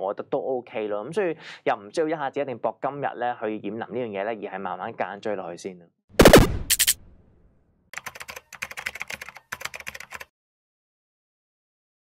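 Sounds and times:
rapid keyboard key clicks: 0:08.0 - 0:10.3.

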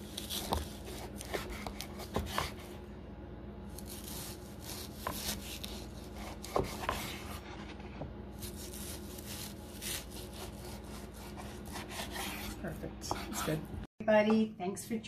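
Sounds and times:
knife sawing through meat: 0:03.8 - 0:07.4, 0:08.4 - 0:13.6.

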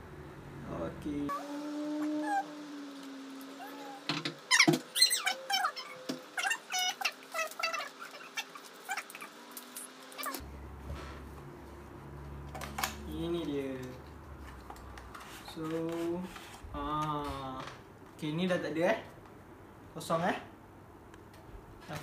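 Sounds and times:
steady hum: 0:00.0 - 0:15.6.

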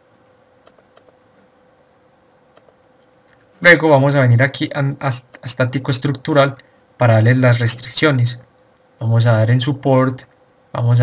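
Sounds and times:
faint steady hum: 0:00.0 - 0:11.0
computer input clicks: 0:00.6 - 0:01.2, 0:02.6 - 0:02.9.

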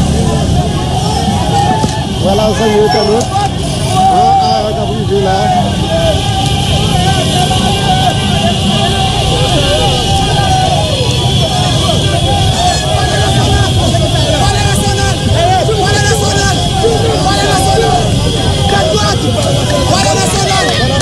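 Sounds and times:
crowd shouting: 0:00.0 - 0:21.0
motorcycle engines rumbling: 0:00.0 - 0:21.0.

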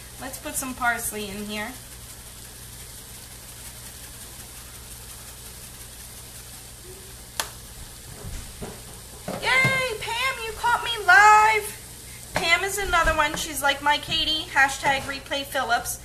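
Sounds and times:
food sizzling in a skillet: 0:00.0 - 0:16.0
woman speaking: 0:00.2 - 0:01.8, 0:09.4 - 0:11.8, 0:12.4 - 0:16.0.

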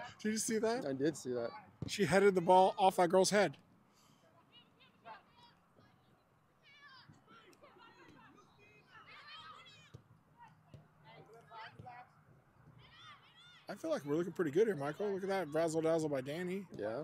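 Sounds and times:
distant players shouting: 0:04.4 - 0:16.7.

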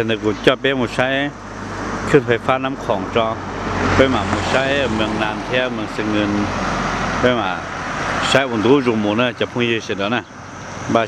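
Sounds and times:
steady background noise: 0:00.0 - 0:11.0
person speaking: 0:02.0 - 0:06.6.

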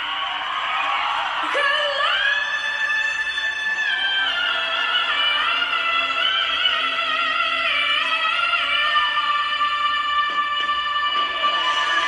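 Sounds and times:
audience screaming and cheering: 0:00.0 - 0:12.0.

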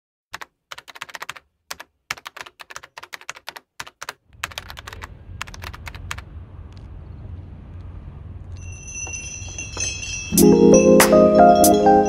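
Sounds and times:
computer keyboard typing: 0:00.3 - 0:06.3
low steady rumble: 0:04.3 - 0:10.3.

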